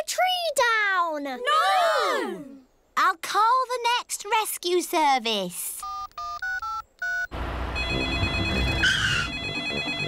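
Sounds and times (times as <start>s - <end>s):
phone keypad beeps: 5.8s - 10.0s
telephone ringing: 5.8s - 10.0s.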